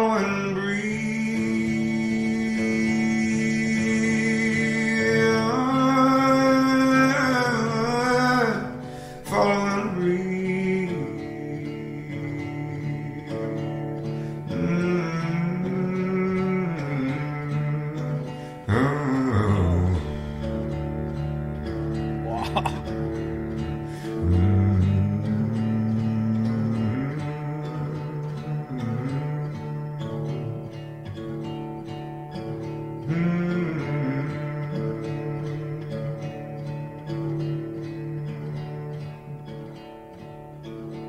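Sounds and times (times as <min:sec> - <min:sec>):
man singing held wordless notes: 0:00.0 - 0:30.6, 0:33.0 - 0:39.7
acoustic guitar: 0:00.0 - 0:41.0.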